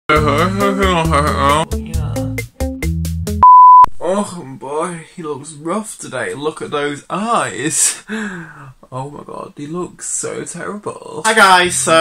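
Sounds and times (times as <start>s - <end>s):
upbeat backing music: 0.1s - 3.9s
censor bleep: 3.4s - 3.9s.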